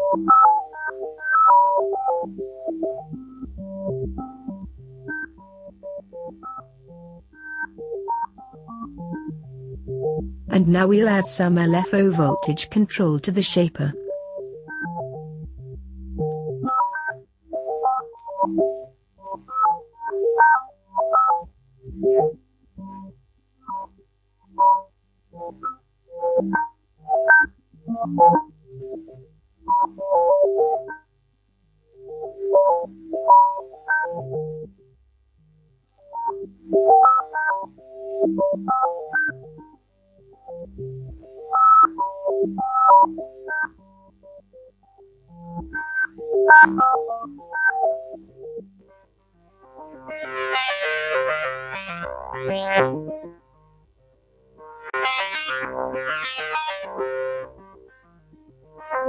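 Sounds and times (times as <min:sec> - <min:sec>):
synth melody of short notes: 0:49.7 - 0:53.4.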